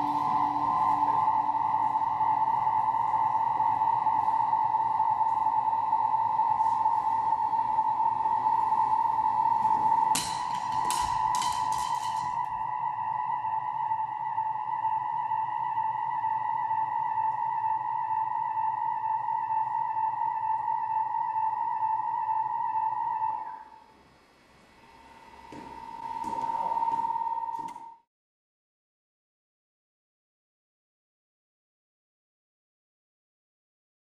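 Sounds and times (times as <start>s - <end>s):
steady high tone: 0.0s - 23.9s, 24.8s - 28.1s.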